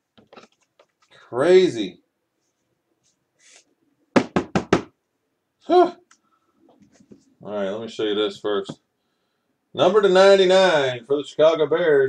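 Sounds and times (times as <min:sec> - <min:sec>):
knocks on hard tabletop: 0:04.1 - 0:05.0.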